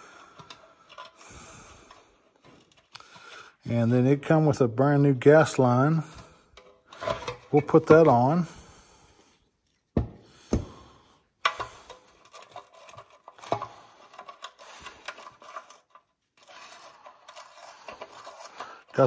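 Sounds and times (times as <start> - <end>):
faint irregular ticking and rubbing: 11.9 - 19.0.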